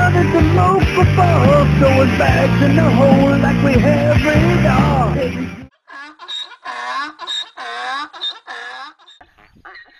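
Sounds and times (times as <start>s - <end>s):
donkey braying: 5.8s - 9.9s.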